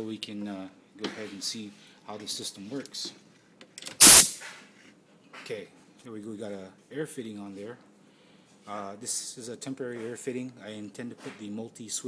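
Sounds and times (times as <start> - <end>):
compressed air hissing: 4.0 - 4.4.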